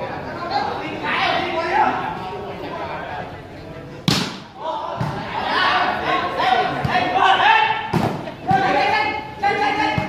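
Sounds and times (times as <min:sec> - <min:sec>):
spectators' voices: 0:00.0 - 0:10.0
volleyball hit by hand: 0:04.1 - 0:05.2.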